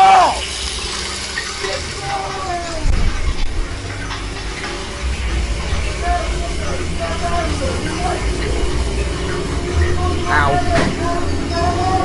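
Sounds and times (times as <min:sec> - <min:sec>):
indistinct voices: 0:01.4 - 0:12.0
low rumble: 0:01.7 - 0:12.0.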